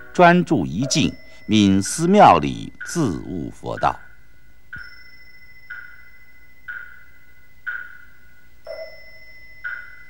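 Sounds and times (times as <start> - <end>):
faint steady high ring: 0.0 - 10.0.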